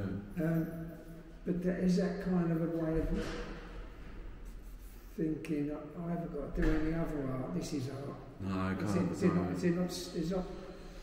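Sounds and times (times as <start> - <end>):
person breathing: 10.5 - 11.0.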